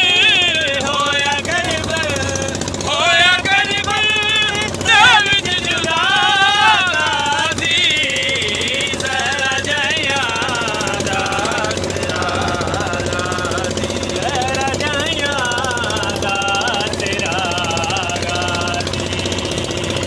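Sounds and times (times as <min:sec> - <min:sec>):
boat engine knocking run: 0:00.0 - 0:20.0
man singing unaccompanied: 0:00.0 - 0:20.0.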